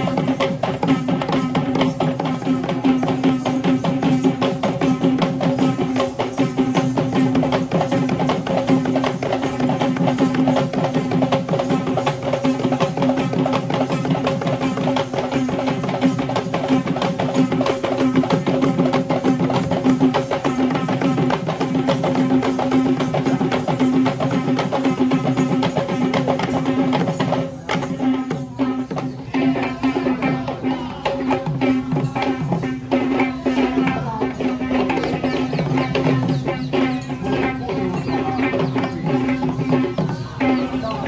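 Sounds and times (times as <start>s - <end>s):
fast dense drumming: 0.0s - 41.0s.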